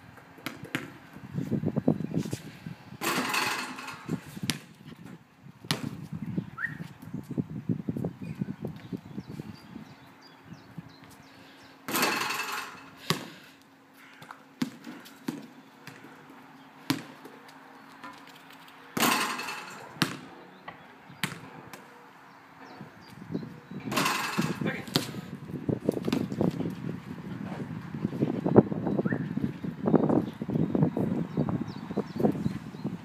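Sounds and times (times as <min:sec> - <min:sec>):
basketball bouncing on asphalt: 0:00.1 - 0:01.3, 0:03.0 - 0:04.9, 0:05.6 - 0:06.2, 0:11.9 - 0:13.5, 0:14.2 - 0:17.5, 0:19.0 - 0:21.9, 0:23.9 - 0:26.8
basketball hitting backboard and rim: 0:00.4 - 0:01.0, 0:03.0 - 0:04.7, 0:05.7 - 0:06.0, 0:11.9 - 0:13.4, 0:16.9 - 0:17.1, 0:19.0 - 0:20.3, 0:21.2 - 0:21.8, 0:23.8 - 0:25.2
ball scuffing on ground: 0:00.4 - 0:02.5, 0:04.1 - 0:07.4, 0:11.9 - 0:16.2, 0:16.9 - 0:20.2.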